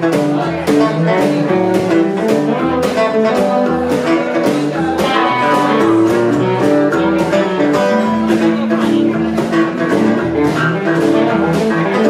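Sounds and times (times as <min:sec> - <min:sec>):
drums keeping a steady beat: 0:00.0 - 0:12.0
electric guitar: 0:00.0 - 0:12.0
strummed acoustic guitar: 0:00.0 - 0:12.0.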